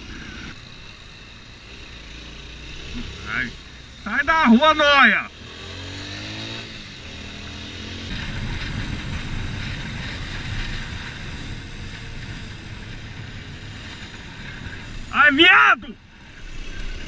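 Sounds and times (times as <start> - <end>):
motorcycle engine running: 0.0 - 15.3
rough engine rumble: 0.0 - 17.0
wind on microphone: 8.1 - 15.0.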